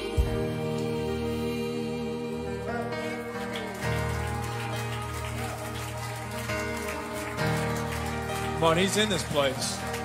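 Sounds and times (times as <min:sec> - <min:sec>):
bass: 0:00.0 - 0:10.0
held keyboard chords: 0:00.0 - 0:10.0.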